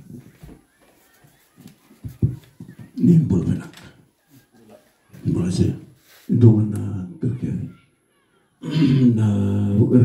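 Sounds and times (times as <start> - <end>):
man speaking muffled: 2.0 - 7.8, 8.6 - 10.0.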